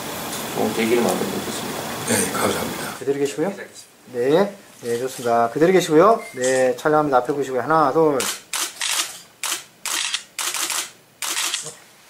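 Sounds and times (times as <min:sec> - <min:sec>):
camera shutters clicking: 0:08.2 - 0:11.8.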